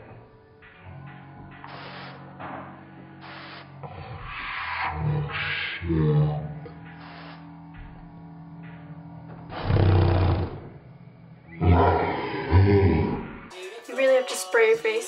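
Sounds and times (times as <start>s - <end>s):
background music: 0.0s - 15.0s
spray bottle hissing sprays: 1.6s - 2.6s, 3.2s - 3.8s, 6.9s - 7.6s.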